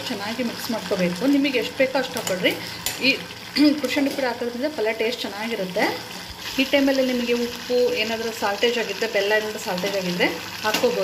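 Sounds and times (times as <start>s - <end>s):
pan sizzling: 0.0s - 11.0s.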